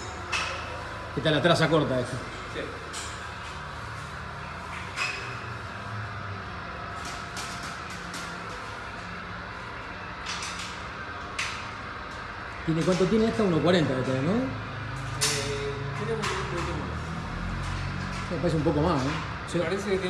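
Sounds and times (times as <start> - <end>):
workshop hum: 0.0 - 20.0.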